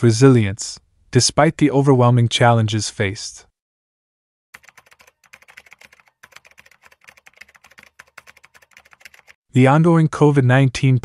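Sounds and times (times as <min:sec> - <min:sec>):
rapid keyboard typing clicks: 0:04.6 - 0:09.4.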